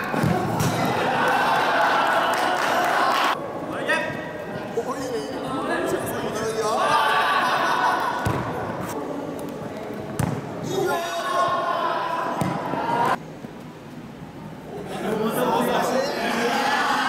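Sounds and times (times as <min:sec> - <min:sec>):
ball kicked and bouncing on floor: 0:10.2 - 0:10.4.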